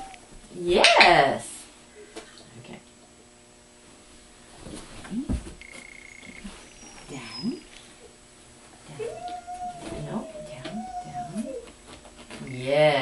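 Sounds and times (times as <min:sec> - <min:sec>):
dog whining: 0:00.0 - 0:00.3, 0:06.2 - 0:08.2, 0:08.9 - 0:11.8.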